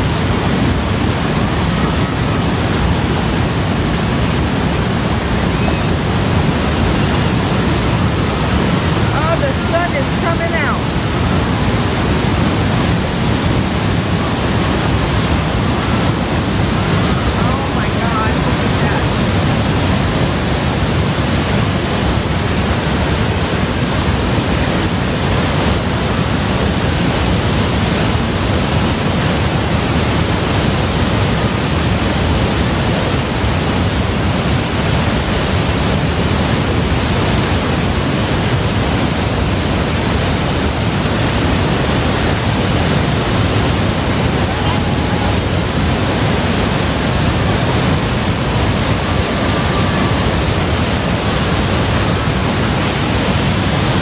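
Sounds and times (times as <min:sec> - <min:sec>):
waterfall rushing onto rocks: 0:00.0 - 0:54.0.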